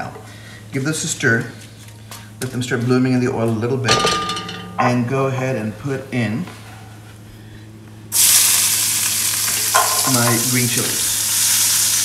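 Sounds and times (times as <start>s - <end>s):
chilies sizzling in hot oil: 8.1s - 12.0s.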